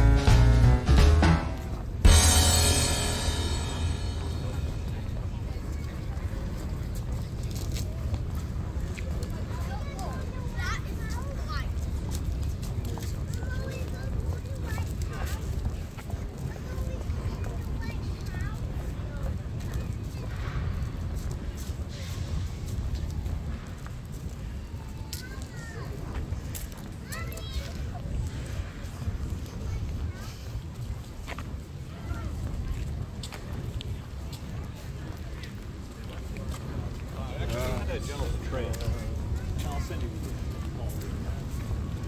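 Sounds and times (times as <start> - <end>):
music track: 0.0 - 5.4
faint voices of passers-by: 0.0 - 42.0
street rumble: 0.0 - 42.0.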